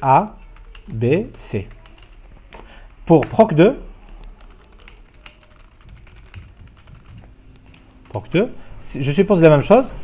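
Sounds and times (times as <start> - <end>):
computer keyboard typing: 0.2 - 8.4.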